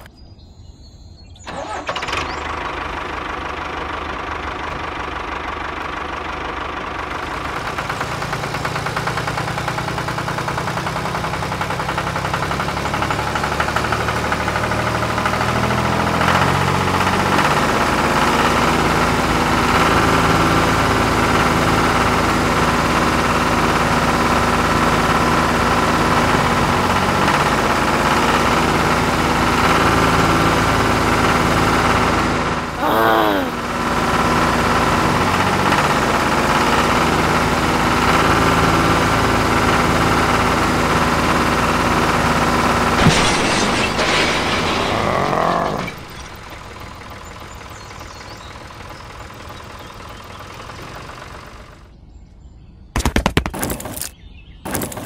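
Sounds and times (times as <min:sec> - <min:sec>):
small engine rattling: 0:01.4 - 0:32.8, 0:33.5 - 0:51.9, 0:53.2 - 0:55.0.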